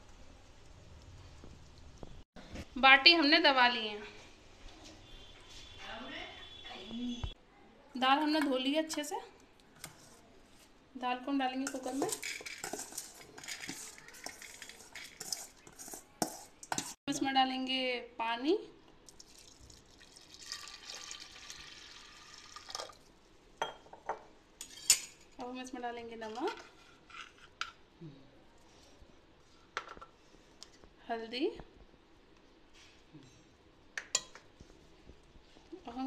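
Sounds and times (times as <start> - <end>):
spoon scraping steel bowl: 11.6 - 17.0.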